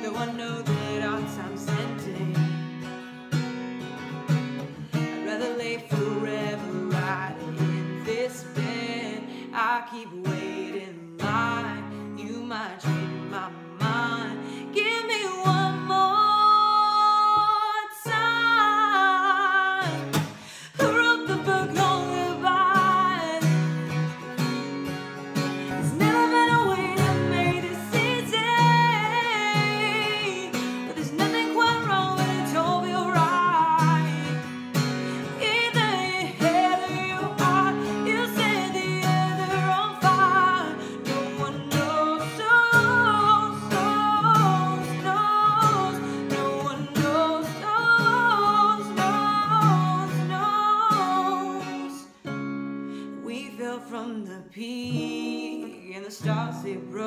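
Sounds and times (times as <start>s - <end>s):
strummed acoustic guitar: 0.0s - 57.0s
woman singing: 0.0s - 57.0s.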